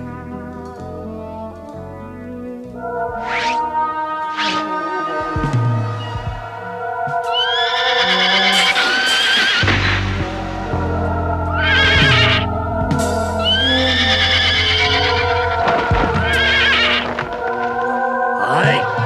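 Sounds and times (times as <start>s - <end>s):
background music: 0.0s - 19.0s
horse neighing: 7.3s - 10.1s, 13.4s - 17.2s.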